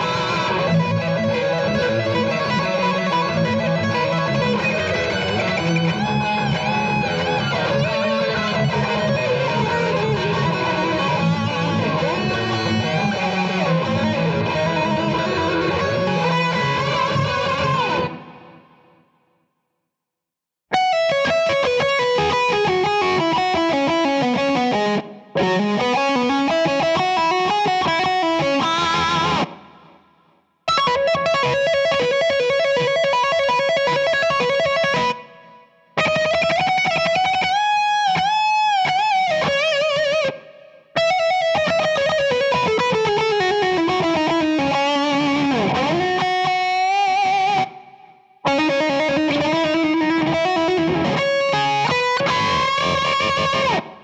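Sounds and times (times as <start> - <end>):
distorted electric guitar solo: 0.0 - 19.0, 20.7 - 30.0, 30.7 - 54.0.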